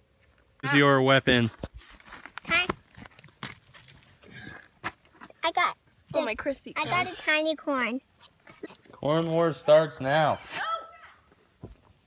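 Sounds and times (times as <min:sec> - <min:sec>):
dry corn husks rustling: 0:01.4 - 0:04.4
short voiced cry: 0:10.4 - 0:11.2.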